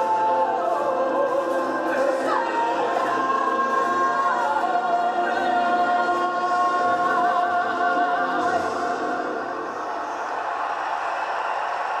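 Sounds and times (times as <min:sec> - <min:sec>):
large choir singing: 0:00.0 - 0:10.6.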